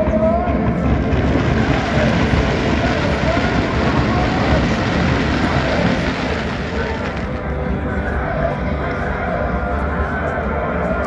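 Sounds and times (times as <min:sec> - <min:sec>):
fireworks crackling: 0:00.5 - 0:08.2.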